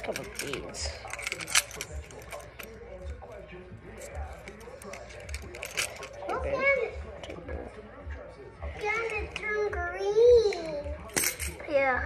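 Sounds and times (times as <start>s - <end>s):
keys jangling: 0.0s - 2.8s, 4.4s - 6.4s, 11.0s - 11.6s.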